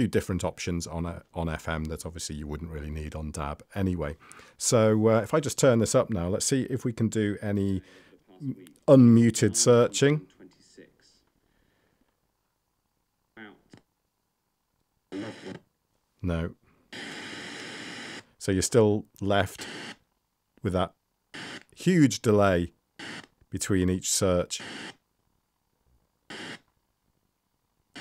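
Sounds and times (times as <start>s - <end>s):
radio broadcast snatch: 15.1s - 15.6s.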